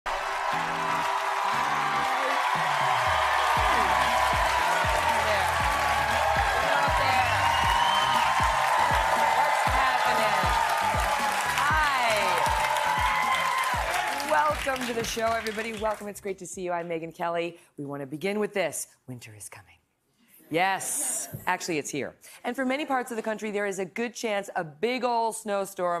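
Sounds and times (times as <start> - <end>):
studio audience clapping and cheering: 0.0 - 16.2
upbeat theme music with drums: 0.4 - 16.0.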